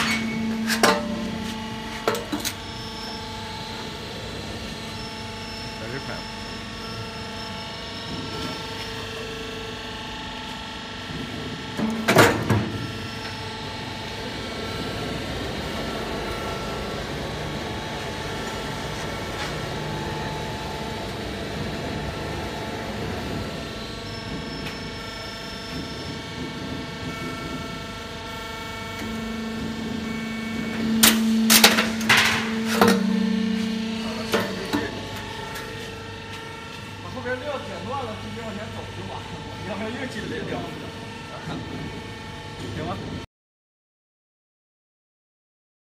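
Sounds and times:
press metal clank: 0.0s - 2.6s, 29.0s - 35.7s
hydraulic hum: 0.0s - 43.2s
roll forming machine humming: 0.0s - 43.2s
sharp metal bangs: 29.0s - 35.9s.

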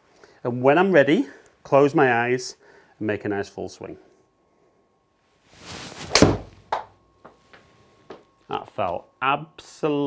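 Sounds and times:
golf club whooshing: 5.6s - 6.6s.

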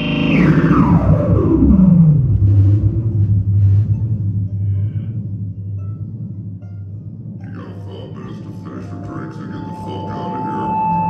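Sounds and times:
distorted banjo tone gliding down: 0.0s - 11.0s.

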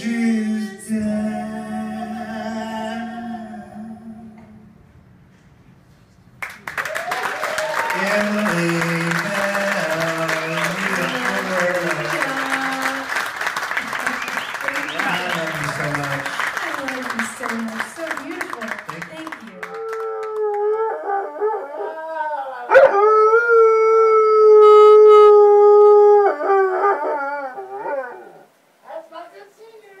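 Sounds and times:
audience applause: 6.4s - 20.8s
voices: 7.6s - 20.2s
dog howling: 19.7s - 28.5s.

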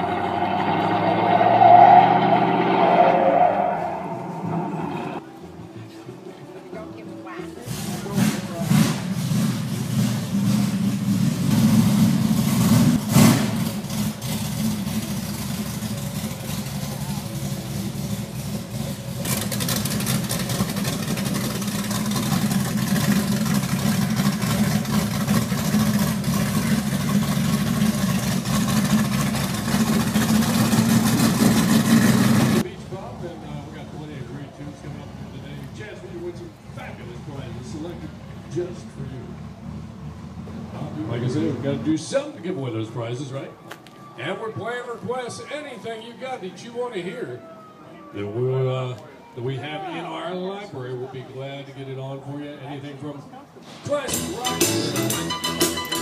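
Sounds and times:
car engine running: 0.0s - 5.2s, 7.7s - 34.2s
voices: 32.6s - 39.4s.

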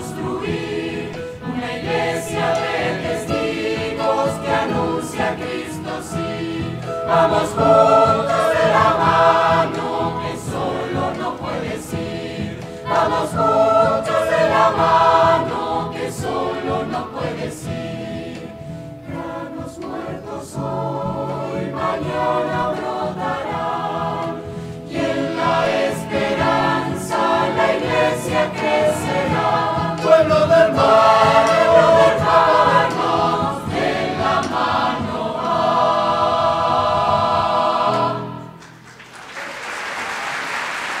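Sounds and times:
choir singing a hymn: 0.0s - 38.6s
applause: 38.6s - 41.0s.

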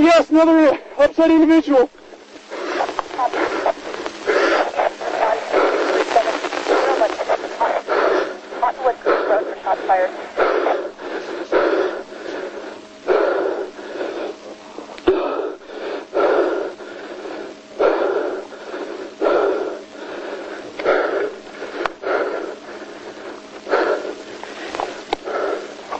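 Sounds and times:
person breathing hard and wheezing: 2.5s - 25.9s.

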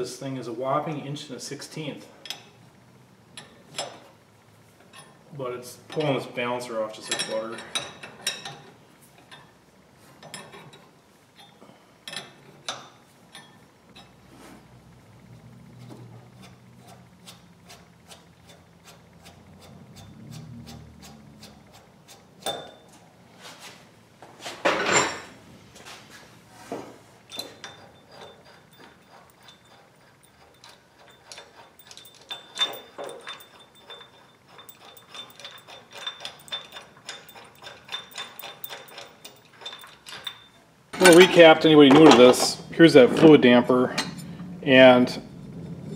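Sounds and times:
metal clank: 24.7s - 25.4s, 30.4s - 44.5s
metal clicks and clinks: 27.3s - 42.6s.

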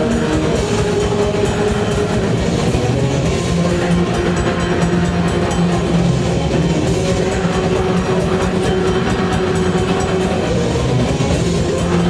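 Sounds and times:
distorted guitars droning: 0.0s - 12.0s
drums and cymbals: 0.0s - 12.0s.

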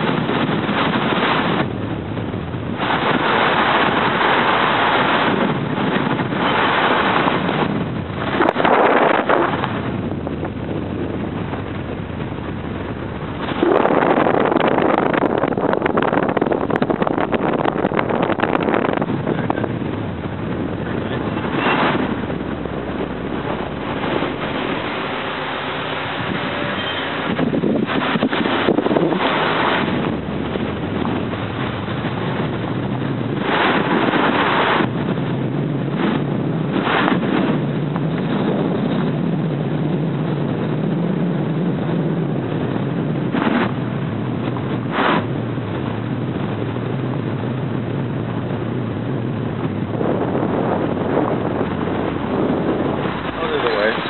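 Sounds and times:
car engine and road noise: 0.0s - 54.0s
wind buffeting microphone: 0.0s - 54.0s.

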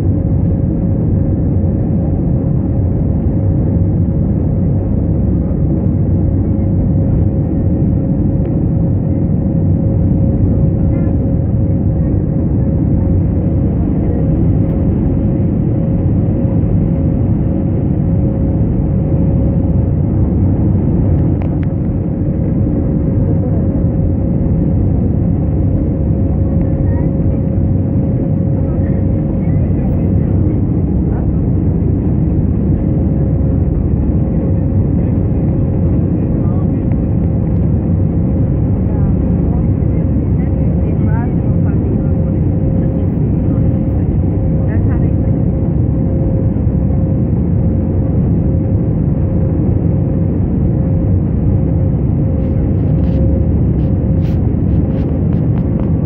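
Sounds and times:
constant hum-like tone: 0.0s - 56.0s
jet engine rumble and rushing air: 0.0s - 56.0s.

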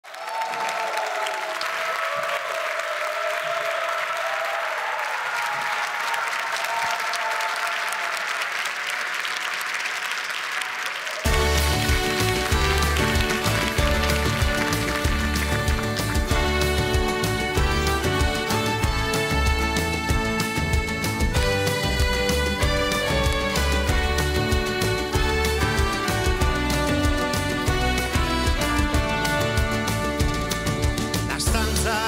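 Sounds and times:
audience applauding: 0.0s - 32.0s
live band playing: 11.3s - 32.0s.

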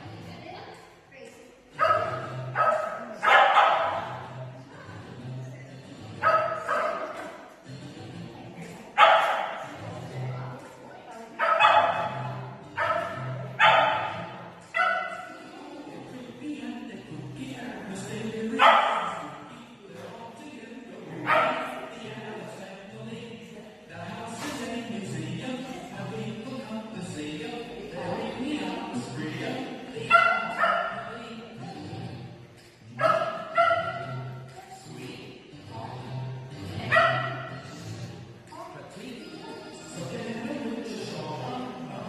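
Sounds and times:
background music: 0.0s - 42.0s
dog barking: 1.8s - 4.2s, 6.2s - 7.4s, 9.0s - 9.6s, 11.4s - 12.2s, 12.8s - 15.3s, 18.6s - 19.3s, 21.2s - 21.7s, 30.1s - 31.0s, 33.0s - 34.2s, 36.9s - 37.5s.

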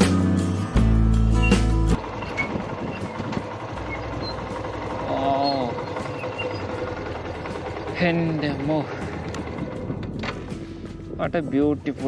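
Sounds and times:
motorcycle engine at low speed: 0.0s - 12.0s
road noise: 0.0s - 12.0s.

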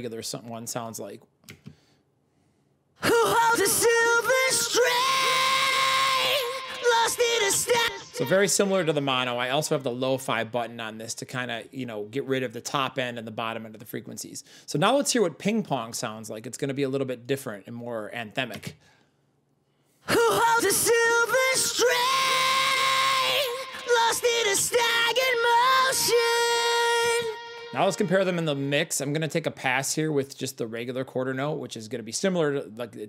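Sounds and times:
man singing long high note: 3.0s - 9.8s, 20.1s - 29.1s
vocal echoes: 3.0s - 9.9s, 20.0s - 29.4s.

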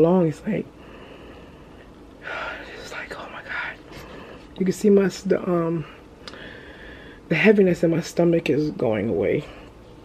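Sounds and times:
woman whispering: 2.6s - 3.9s.

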